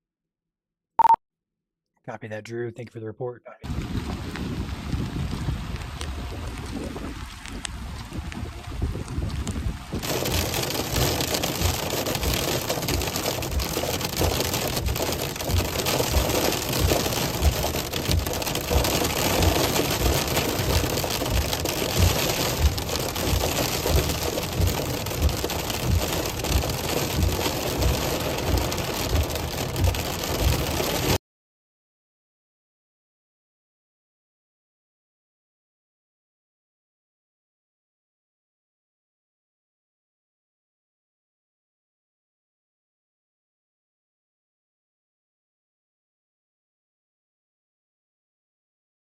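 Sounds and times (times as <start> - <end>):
rain falling: 3.7 - 31.2
rain pattering on windshield: 3.7 - 31.2
road noise: 3.7 - 31.2.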